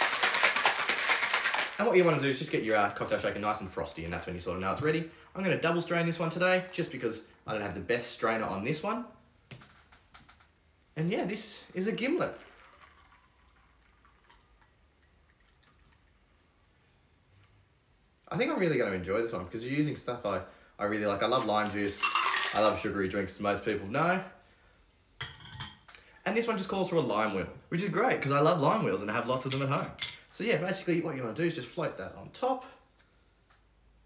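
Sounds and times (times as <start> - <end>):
ice rattling in cocktail shaker: 0.0 - 1.8, 12.2 - 16.0, 21.4 - 22.9
liquid trickling into glass: 12.3 - 17.3
small drips: 12.4 - 18.3.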